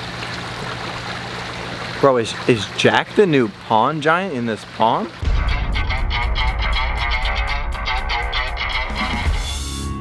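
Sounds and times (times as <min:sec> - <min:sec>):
running water: 0:00.0 - 0:05.4.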